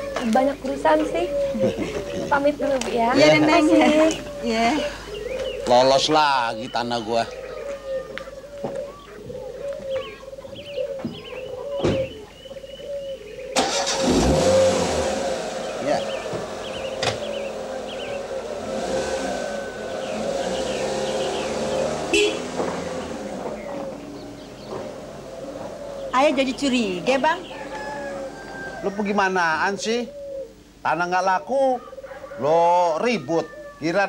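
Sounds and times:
birds chirping: 0.0s - 34.0s
car engine starting and running: 13.5s - 28.8s.

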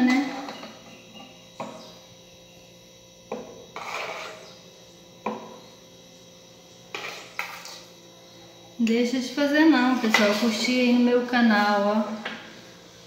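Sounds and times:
spoon scraping: 3.5s - 4.7s, 6.9s - 7.9s.

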